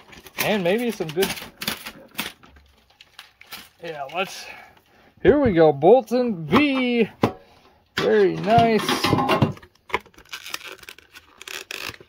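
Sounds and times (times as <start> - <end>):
plastic wrapping crinkling: 0.0 - 4.9, 9.6 - 12.0.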